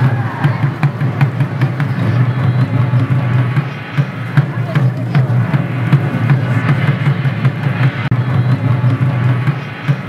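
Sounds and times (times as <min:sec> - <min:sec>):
taiko drums beating: 0:00.0 - 0:10.0.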